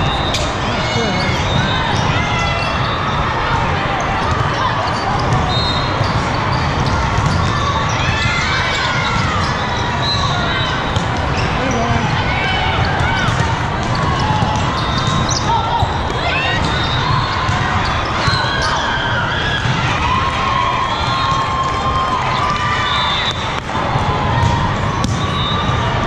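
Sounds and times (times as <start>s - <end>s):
hubbub of voices: 0.0s - 26.0s
balls being hit and bouncing: 4.2s - 9.9s, 10.8s - 18.4s, 23.4s - 26.0s.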